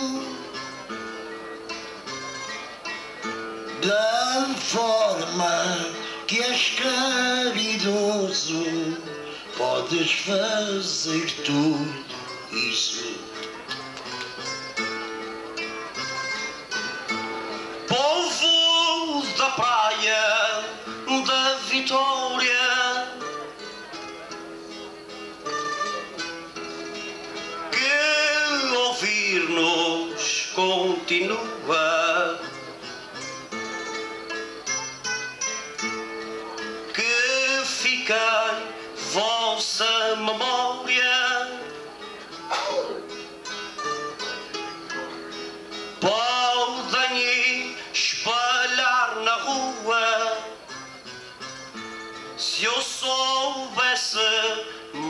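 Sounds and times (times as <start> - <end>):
man singing: 0.0 - 0.6, 3.7 - 13.4, 17.8 - 23.5, 27.5 - 32.7, 36.8 - 43.1, 45.9 - 50.7, 52.4 - 55.0
plucked guitars: 0.0 - 55.0.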